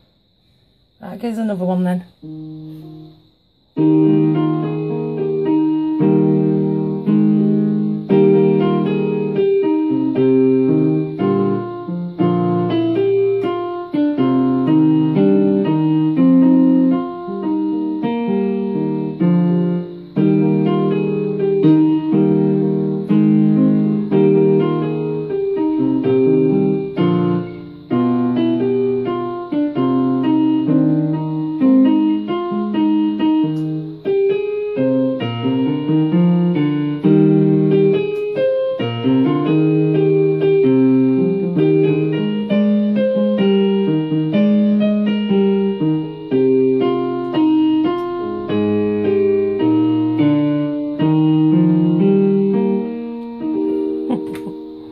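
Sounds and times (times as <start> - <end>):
electronic keyboard piano melody: 3.8 - 54.9.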